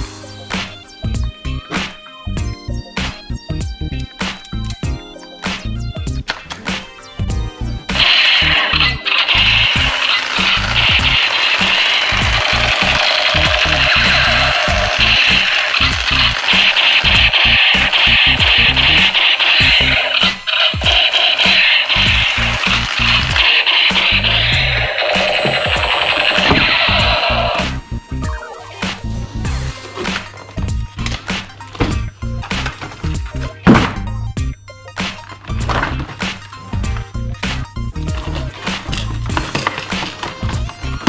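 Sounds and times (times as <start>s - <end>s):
background music with a beat: 0.0s - 41.0s
toy rifle electronic sound effect: 7.9s - 29.0s.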